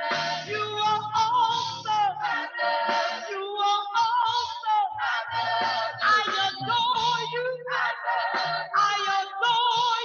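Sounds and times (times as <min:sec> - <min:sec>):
band playing low bass notes: 0:00.0 - 0:07.6
choir singing with vibrato: 0:00.0 - 0:10.0.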